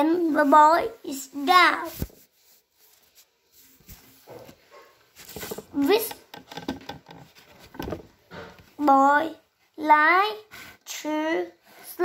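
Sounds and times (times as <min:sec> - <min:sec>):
book pages turning: 0:01.8 - 0:08.6.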